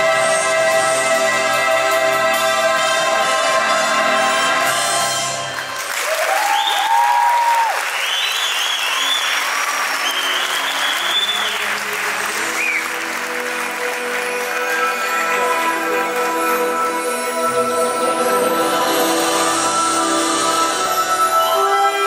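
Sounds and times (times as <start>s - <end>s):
show music: 0.0s - 8.0s, 9.8s - 22.0s
audience applauding: 5.4s - 16.9s
audience cheering: 5.8s - 13.4s.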